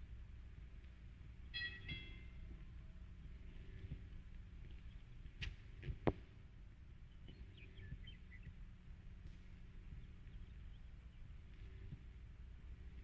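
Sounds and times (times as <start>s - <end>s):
film soundtrack hum and hiss: 0.0s - 13.0s
faint high chirps: 1.4s - 2.6s.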